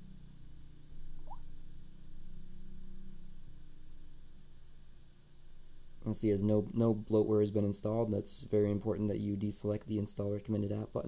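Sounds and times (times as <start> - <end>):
low background hum: 0.0 - 11.0
faint rising chirp: 1.1 - 1.6.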